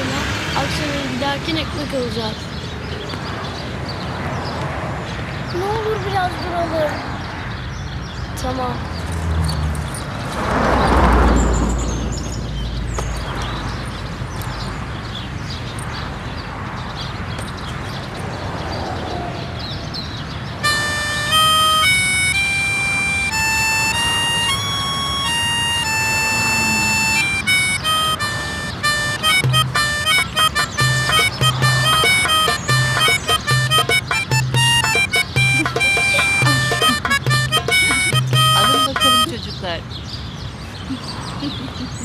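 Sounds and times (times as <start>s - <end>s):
outdoor background noise: 0.0s - 42.0s
harmonica playing: 20.6s - 39.4s
low repeating beat: 20.7s - 39.4s.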